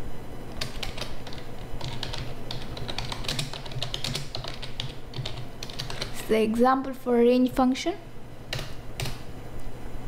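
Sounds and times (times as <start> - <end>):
steady low hum: 0.0 - 10.0
computer keyboard typing: 0.6 - 6.2, 8.5 - 9.2.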